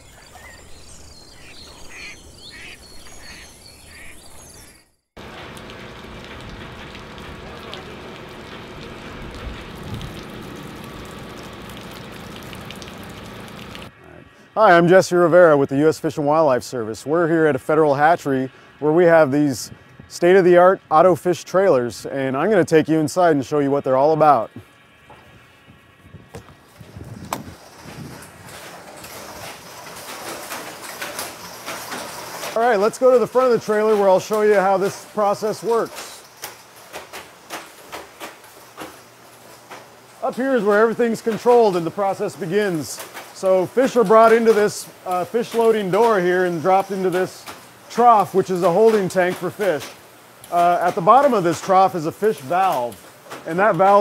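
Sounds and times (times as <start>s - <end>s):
birds chirping: 0.0s - 5.0s
running water rushing: 5.2s - 13.9s, 27.3s - 54.0s
water drips and clicks: 5.2s - 13.9s, 28.2s - 54.0s.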